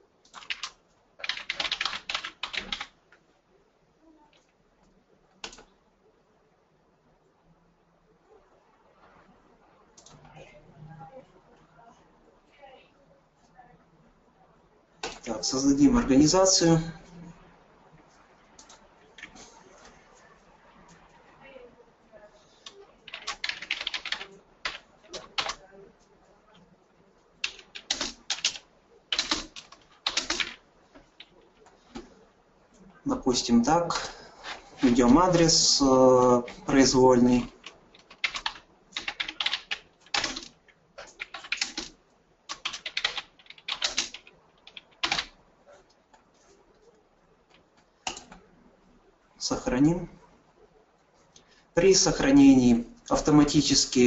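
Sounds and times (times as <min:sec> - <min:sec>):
typing on computer keyboard: 0:00.2 - 0:03.0, 0:05.4 - 0:05.7, 0:22.6 - 0:25.6, 0:27.4 - 0:32.1, 0:36.4 - 0:45.4, 0:47.5 - 0:48.4.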